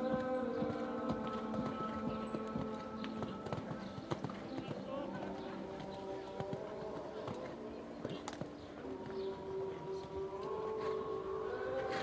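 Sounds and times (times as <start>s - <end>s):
horse hoofbeats: 0.0s - 11.0s
background music with held chords: 0.0s - 12.0s.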